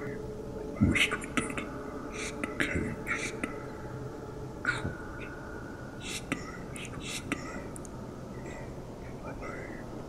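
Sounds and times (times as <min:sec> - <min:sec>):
person whispering: 0:00.0 - 0:03.7, 0:04.6 - 0:05.4, 0:06.0 - 0:07.8, 0:08.4 - 0:09.9
faint steady tone: 0:00.0 - 0:10.0.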